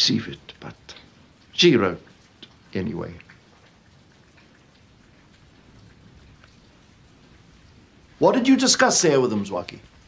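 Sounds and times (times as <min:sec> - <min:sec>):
faint background noise: 0:00.0 - 0:10.0
soft scattered ticks: 0:00.3 - 0:10.0.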